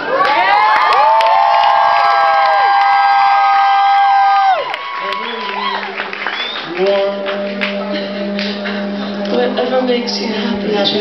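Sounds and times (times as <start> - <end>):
crowd cheering and screaming: 0.0 - 6.8.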